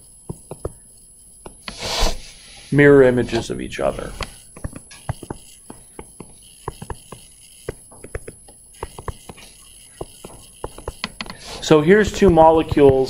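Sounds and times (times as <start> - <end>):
faint room noise: 0.0 - 13.0.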